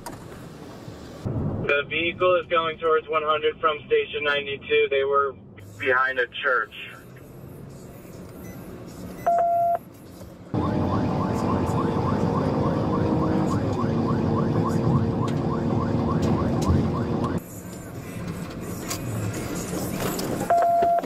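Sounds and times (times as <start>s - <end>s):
car engine: 0.0s - 21.0s
road noise: 0.0s - 21.0s
short electronic beep: 9.2s - 9.8s
police siren yelping: 10.5s - 17.4s.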